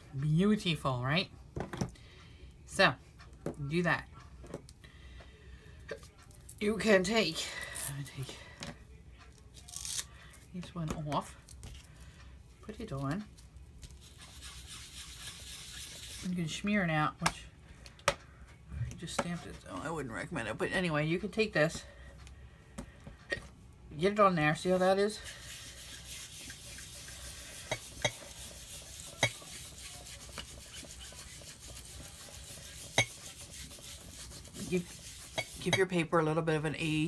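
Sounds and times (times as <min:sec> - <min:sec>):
foam tool rubbing on paper: 0:13.9 - 0:16.4, 0:24.8 - 0:35.8.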